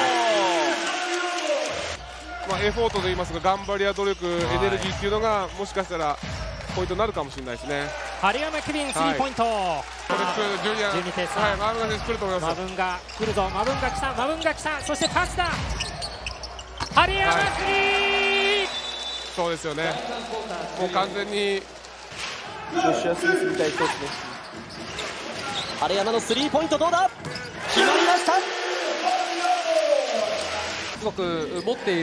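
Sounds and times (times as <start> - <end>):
crowd cheering: 0.0 - 3.5, 4.4 - 25.7, 27.6 - 31.0.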